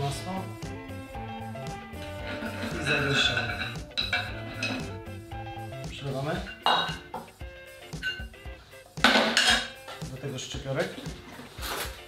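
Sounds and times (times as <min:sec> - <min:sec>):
background music: 0:00.0 - 0:12.0
pan clattering on hard surface: 0:02.6 - 0:05.0, 0:06.5 - 0:07.3, 0:09.0 - 0:09.8.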